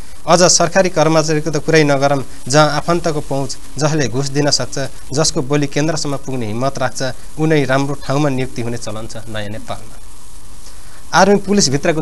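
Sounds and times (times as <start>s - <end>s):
low electrical hum: 0.0s - 12.0s
steady hiss: 0.0s - 12.0s
man speaking: 0.3s - 10.0s, 11.1s - 12.0s.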